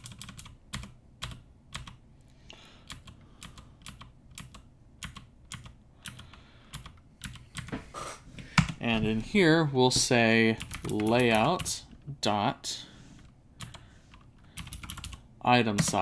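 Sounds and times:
computer keyboard keys clicking: 0.0 - 2.0, 2.8 - 7.7, 10.6 - 11.7, 13.6 - 15.2.

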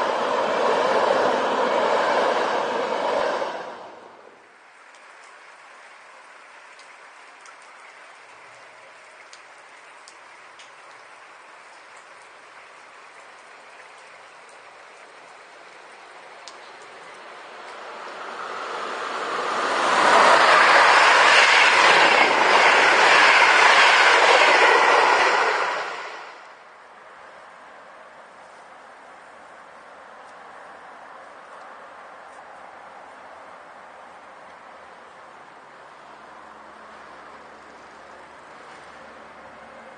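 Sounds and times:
train passing at speed: 0.0 - 4.7, 15.4 - 26.8
wheels rushing on rails: 0.0 - 9.1, 14.2 - 26.8, 34.5 - 39.9
faint ticks: 4.9 - 5.4, 6.7 - 17.8.

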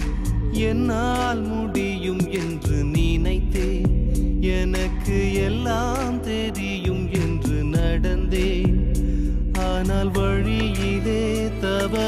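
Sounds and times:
instrumental backing with percussion: 0.0 - 12.0
person singing devotional song: 0.0 - 12.0.

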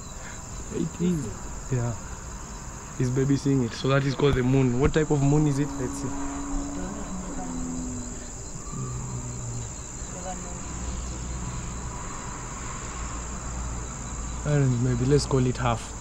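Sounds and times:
crickets chirring: 0.0 - 16.0
low rumble: 4.2 - 11.8.

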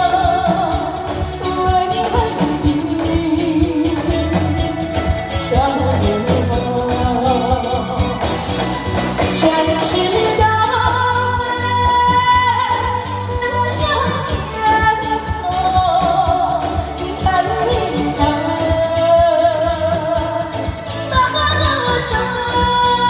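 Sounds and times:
music with steady beat: 0.0 - 23.0
woman singing into a microphone: 0.0 - 23.0.

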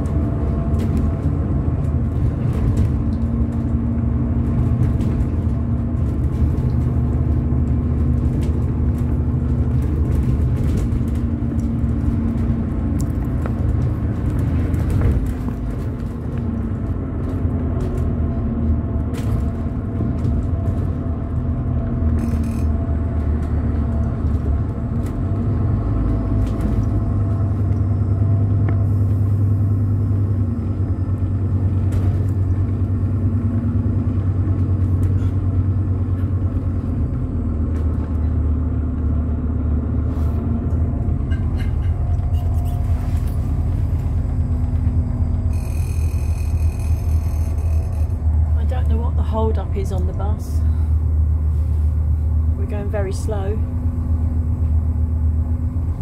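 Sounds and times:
bus body rattling: 0.0 - 56.0
bus engine and road rumble: 0.0 - 56.0.

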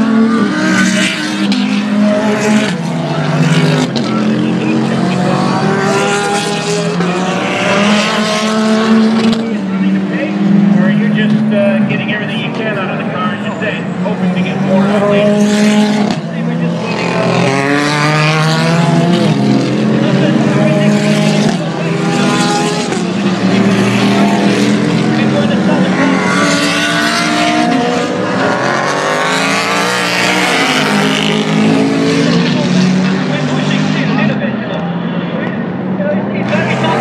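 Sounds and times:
race cars passing at speed: 0.0 - 37.0.

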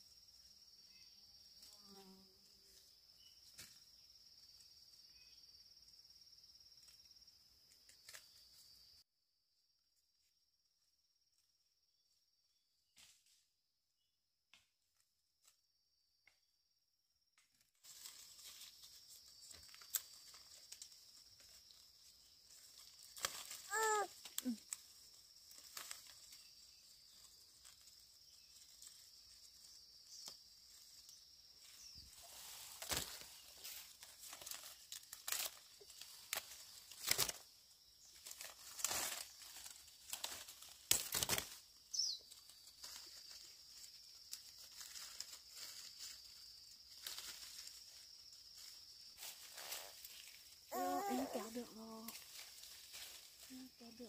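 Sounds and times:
leaves rustling: 17.7 - 54.0
stems snapping: 19.5 - 20.9, 22.8 - 24.8, 32.8 - 33.3, 34.0 - 37.4, 38.2 - 41.6.

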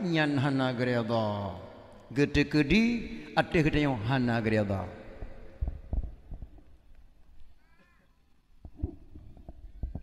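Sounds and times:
faint knocks and clicks: 5.2 - 10.0.

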